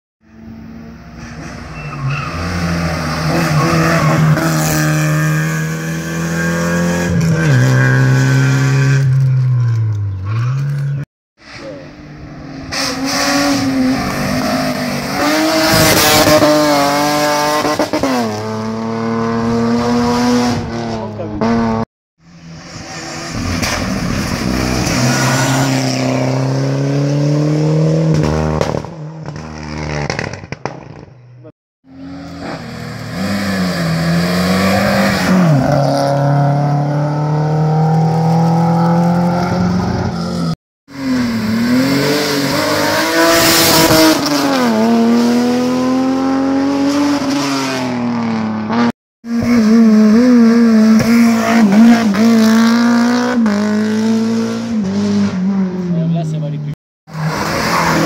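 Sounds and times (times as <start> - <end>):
racing car engines revving: 0.5 - 30.3, 31.9 - 58.0.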